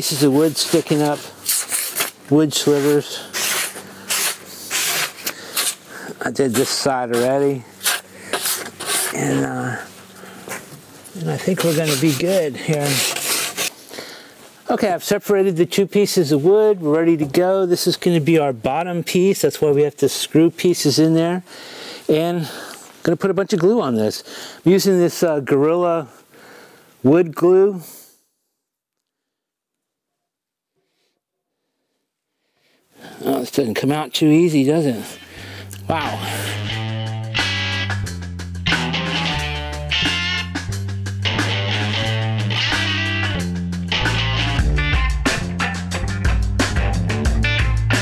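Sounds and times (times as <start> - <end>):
hand sanding wood edge: 0.0 - 5.8, 6.4 - 9.4, 11.2 - 13.7
spoken word: 9.1 - 9.9, 33.2 - 36.6.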